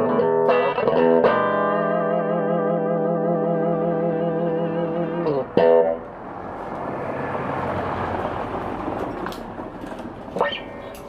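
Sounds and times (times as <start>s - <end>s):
electric guitar chords: 0.0s - 6.2s, 10.4s - 11.0s.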